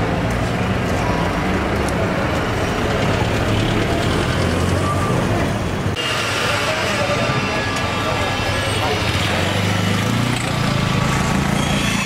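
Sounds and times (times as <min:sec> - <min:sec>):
vehicle engines humming: 0:00.0 - 0:12.0.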